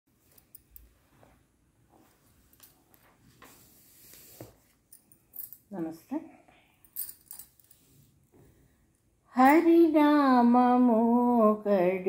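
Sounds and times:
bangles jingling: 4.9s - 5.7s, 6.8s - 7.8s.

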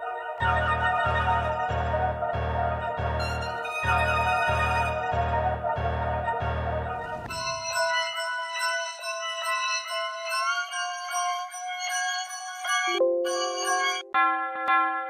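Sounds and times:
trap beat with deep bass: 0.4s - 7.6s
keys melody loop: 0.4s - 7.8s, 13.0s - 14.2s.

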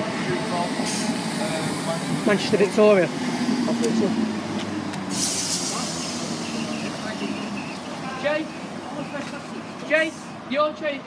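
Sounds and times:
electric train humming: 0.0s - 9.6s
air brake hiss: 0.8s - 1.2s, 5.1s - 6.9s.

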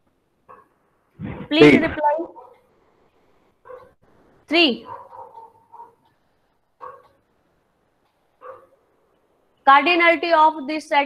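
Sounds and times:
bark-like animal call: 3.6s - 4.0s, 4.8s - 6.1s, 6.8s - 7.2s, 8.4s - 8.8s.

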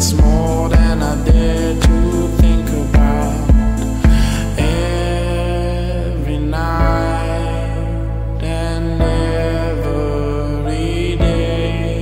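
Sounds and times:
slow song: 0.0s - 12.0s.

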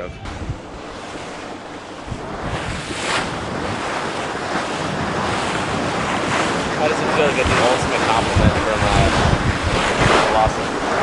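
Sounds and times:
ocean water washing: 0.0s - 11.0s
wind buffeting microphone: 0.0s - 11.0s.

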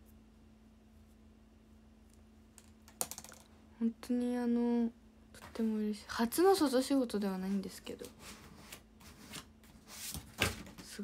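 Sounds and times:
faint steady hum: 0.0s - 11.0s
woman speaking: 3.8s - 8.2s.

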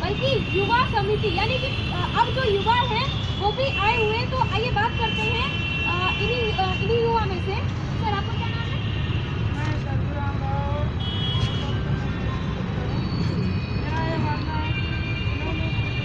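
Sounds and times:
road traffic rumble: 0.0s - 16.0s.

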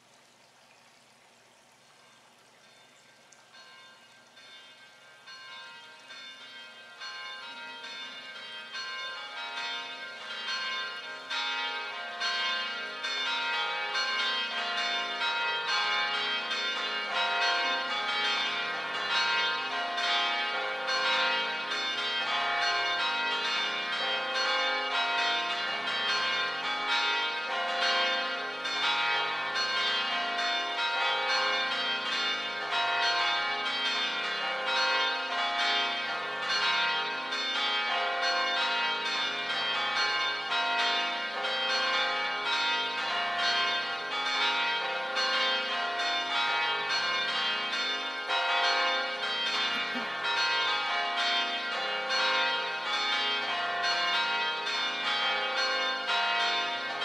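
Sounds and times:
church bells pealing: 3.5s - 57.0s.

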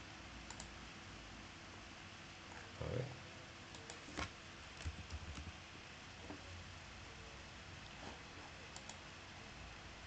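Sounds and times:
low steady hiss: 0.0s - 10.0s
computer mouse clicks: 0.5s - 0.7s, 3.7s - 5.5s, 8.7s - 9.0s.

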